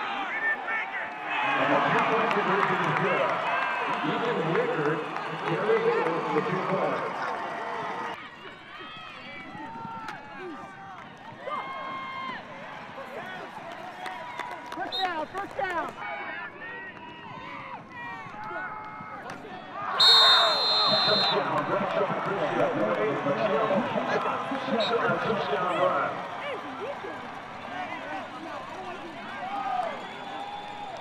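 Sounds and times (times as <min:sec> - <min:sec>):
crowd cheering and shouting: 0:00.0 - 0:31.0.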